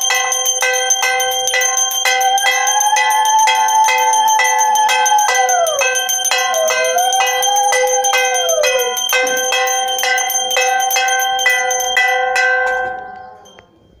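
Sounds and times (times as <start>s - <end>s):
hand bell rung rapidly: 0.0s - 13.6s.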